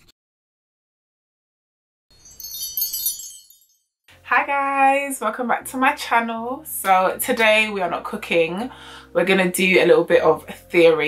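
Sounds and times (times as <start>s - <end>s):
high tinkling chime: 2.1s - 4.0s.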